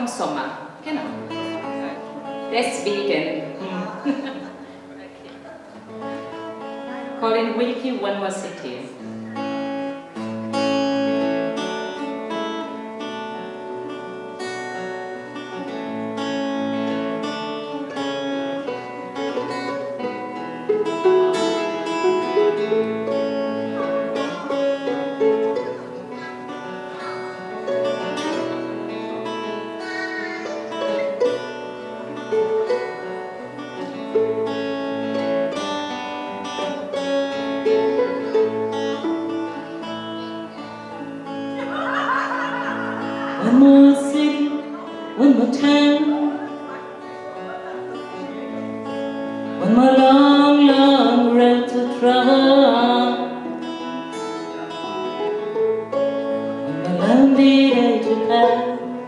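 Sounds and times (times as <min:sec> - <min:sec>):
acoustic guitar picking: 0:00.0 - 0:59.0.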